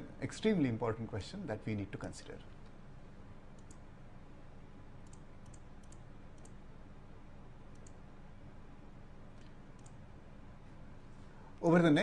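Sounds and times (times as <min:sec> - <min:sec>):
room tone hum and hiss: 0:00.0 - 0:12.0
faint high ticks: 0:03.6 - 0:03.8, 0:07.7 - 0:08.0, 0:09.4 - 0:10.0.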